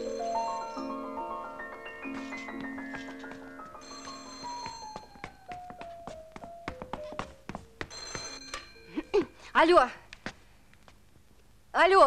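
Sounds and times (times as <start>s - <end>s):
telephone bell ringing: 0.0s - 2.5s, 3.8s - 5.5s, 7.9s - 9.4s.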